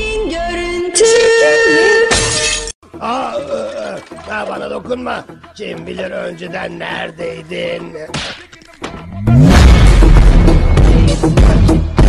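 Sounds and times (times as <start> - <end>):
cartoon glass shattering: 2.1 - 2.7.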